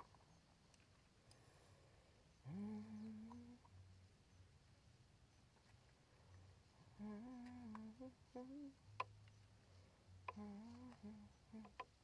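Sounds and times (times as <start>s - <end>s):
woman humming softly: 2.4s - 3.8s, 6.8s - 9.0s, 10.2s - 12.0s.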